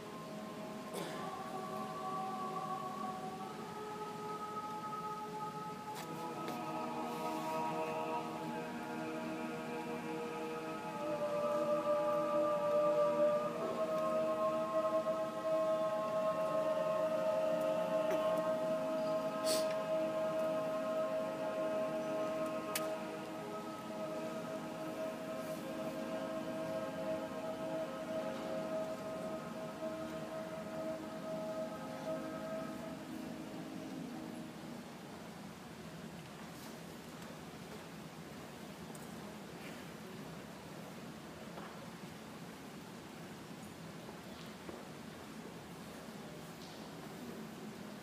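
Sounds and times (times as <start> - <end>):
mixed choir singing a cappella: 0.0 - 34.8.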